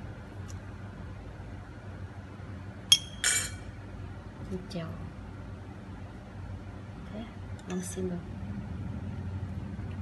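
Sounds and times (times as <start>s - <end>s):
metal spoon clinking on ceramic bowl: 2.9s - 3.7s.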